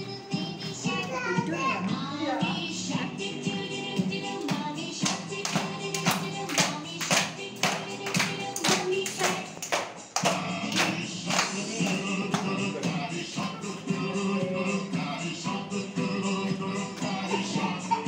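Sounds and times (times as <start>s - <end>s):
upbeat children's song: 0.0s - 18.0s
group clapping along: 3.5s - 18.0s.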